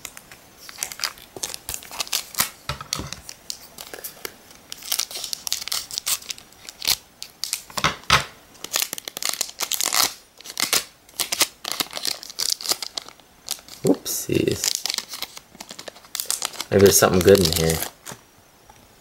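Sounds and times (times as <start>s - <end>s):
foil wrapper crinkling and tearing: 0.0s - 7.8s, 8.6s - 18.2s.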